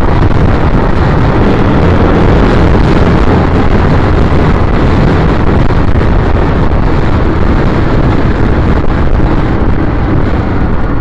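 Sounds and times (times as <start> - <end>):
motorcycle engine running: 0.0 - 11.0
wind rush on microphone: 0.0 - 11.0.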